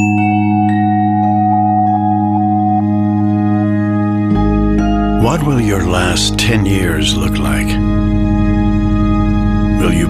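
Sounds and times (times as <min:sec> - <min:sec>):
held low chord: 0:00.0 - 0:10.0
slow soft melody: 0:00.0 - 0:10.0.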